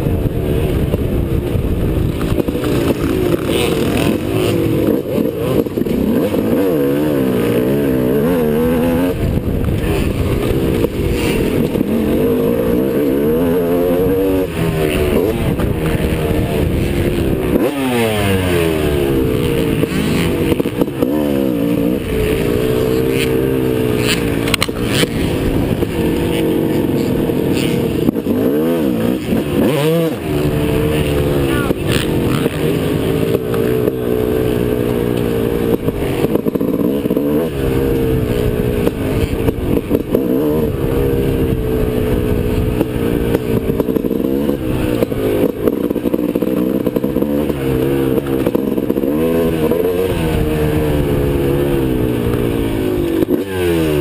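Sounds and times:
motorbike engine revving: 0.0s - 54.0s
wind on microphone: 0.0s - 54.0s.

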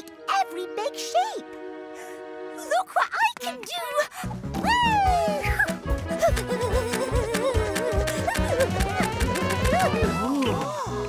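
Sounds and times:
upbeat cartoon music: 0.0s - 11.0s.

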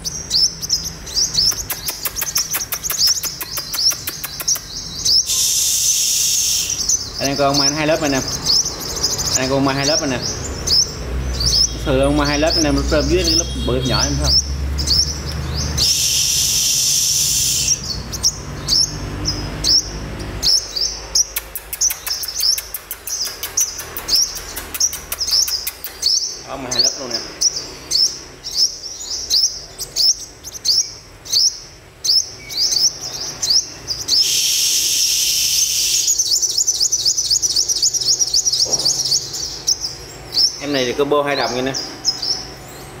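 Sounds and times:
bird chirping: 0.0s - 43.0s
rapid high bird trill: 0.0s - 43.0s
harsh hissing buzz: 5.2s - 7.0s, 15.8s - 18.0s, 34.2s - 36.4s.

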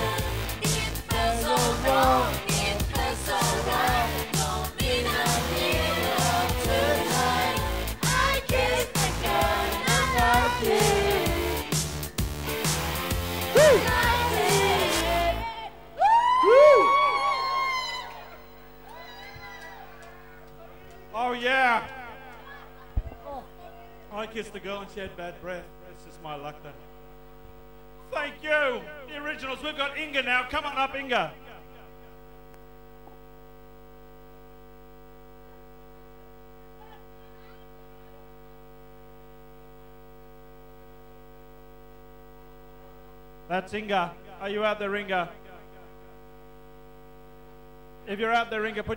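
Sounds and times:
electrical mains hum: 0.0s - 48.9s
person whooping into a microphone: 13.5s - 13.9s, 16.0s - 20.2s.

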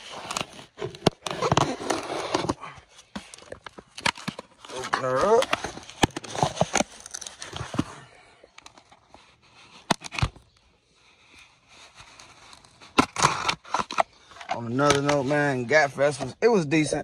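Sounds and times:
cardboard and tape tearing: 0.0s - 8.0s, 11.7s - 16.3s.

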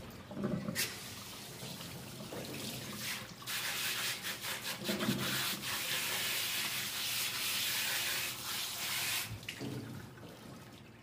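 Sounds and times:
hands scrubbing wet dog coat: 3.0s - 9.3s.

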